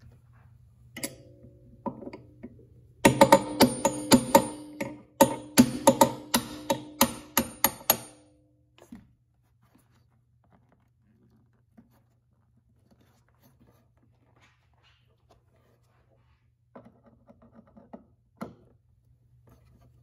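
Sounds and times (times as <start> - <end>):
hammer tapping on metal: 3.0 - 8.4.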